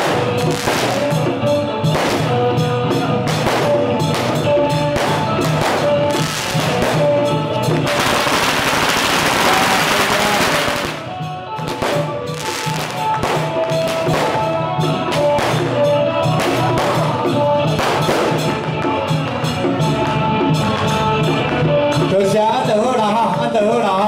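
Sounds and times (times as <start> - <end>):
firecrackers crackling: 0.0 - 22.0
drums beating: 0.0 - 24.0.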